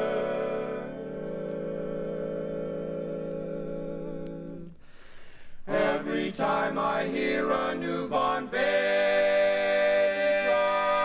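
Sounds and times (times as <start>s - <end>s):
male quartet singing a cappella: 0.0s - 5.0s, 5.6s - 11.0s.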